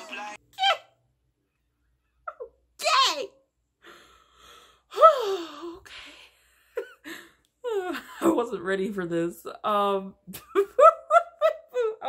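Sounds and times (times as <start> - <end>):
woman breathing in: 3.8 - 4.9.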